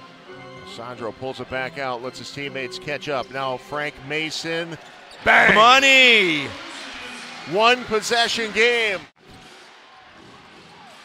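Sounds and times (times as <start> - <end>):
basketball arena background: 4.2 - 9.9.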